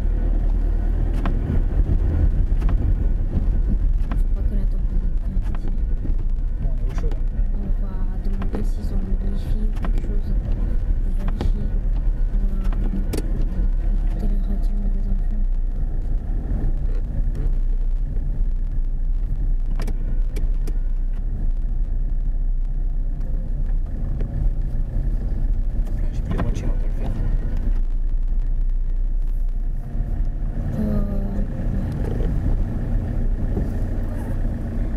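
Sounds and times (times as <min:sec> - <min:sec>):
car engine and tyre rumble: 0:00.0 - 0:34.9
sharp clicks: 0:19.6 - 0:21.4.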